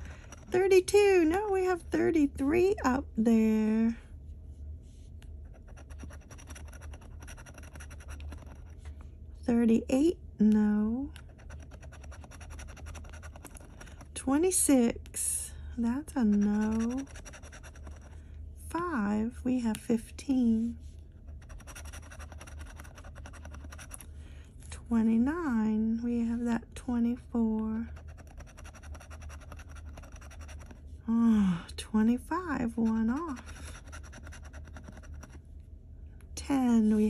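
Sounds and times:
metal tool scratching lottery ticket: 0:05.6 - 0:08.7, 0:11.3 - 0:14.1, 0:16.1 - 0:18.1, 0:21.4 - 0:24.1, 0:27.9 - 0:30.8, 0:32.6 - 0:35.3
metal scratcher scraping ticket: 0:16.2 - 0:17.7.

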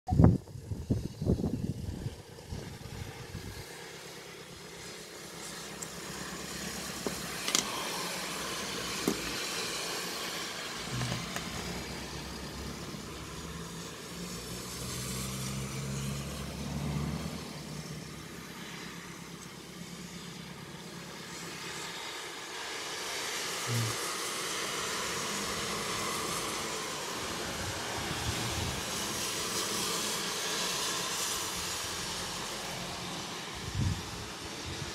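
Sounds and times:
tyres hissing on wet road: 0:00.4 - 0:34.9.

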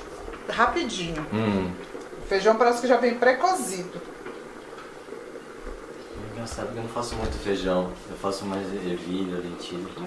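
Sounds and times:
pot cooking with low hiss: 0:00.0 - 0:10.0.

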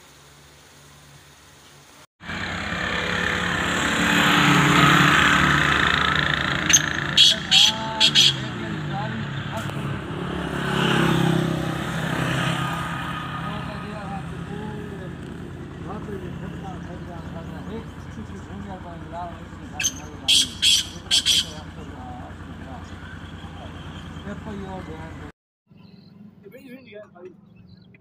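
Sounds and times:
vehicle engine running: 0:02.2 - 0:25.3.

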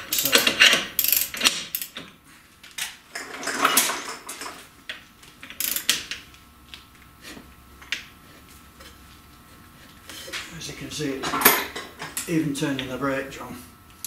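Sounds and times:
low steady hum: 0:00.0 - 0:14.0
torque wrench metallic clicks: 0:00.1 - 0:02.0, 0:05.6 - 0:06.0.

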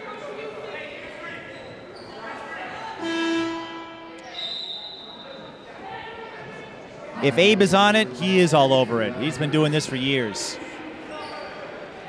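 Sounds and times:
scoreboard horn buzzing: 0:03.0 - 0:04.4.

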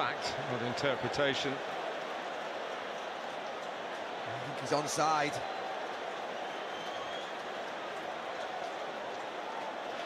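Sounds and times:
stadium crowd hum: 0:00.0 - 0:10.0.

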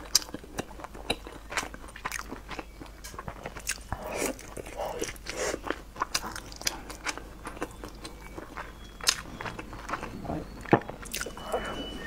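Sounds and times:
person chewing crispy food: 0:00.0 - 0:12.0
soft mouth sounds: 0:03.2 - 0:12.0.

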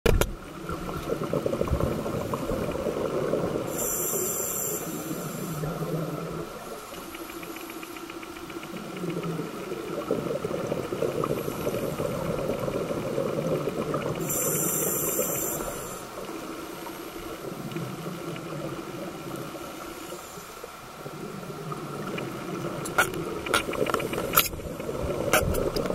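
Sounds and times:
underwater bubbling and crackling: 0:00.1 - 0:25.9
diver regulator breathing hiss: 0:03.6 - 0:08.0, 0:11.3 - 0:12.3, 0:14.2 - 0:17.5, 0:19.6 - 0:20.7.

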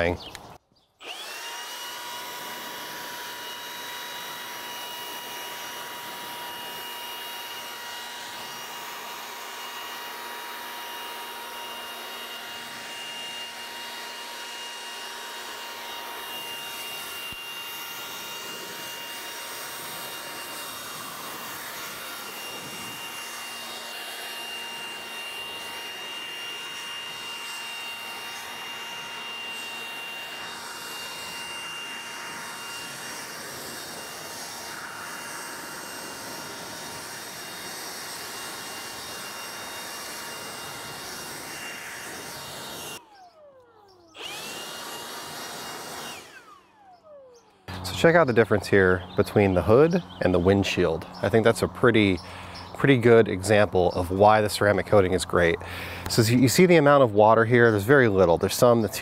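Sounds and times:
electric blower whining: 0:00.0 - 0:59.0.

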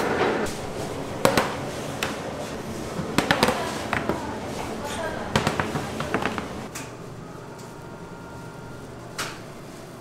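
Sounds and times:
metal baking trays clattering: 0:00.0 - 0:06.7.

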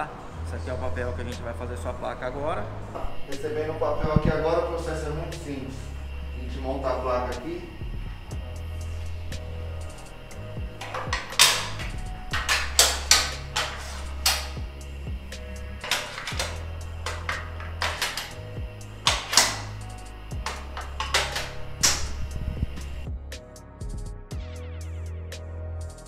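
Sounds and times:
background music with bass: 0:00.0 - 0:26.0
metal dies clinking: 0:15.8 - 0:18.4.

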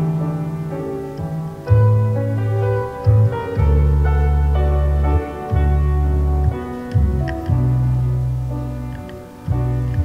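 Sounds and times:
pipe organ playing chords: 0:00.0 - 0:10.0.

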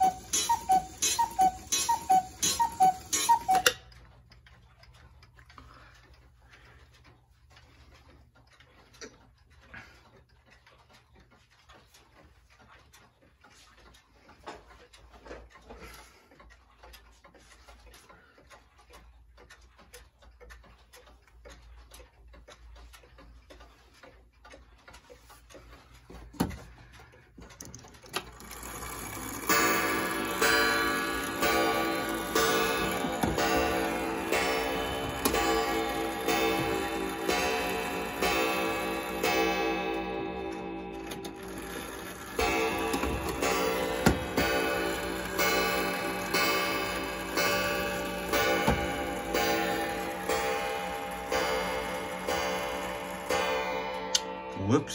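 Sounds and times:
wall clock chime: 0:00.0 - 0:03.8, 0:28.2 - 0:54.9
pendulum clocks ticking: 0:00.0 - 0:54.9.

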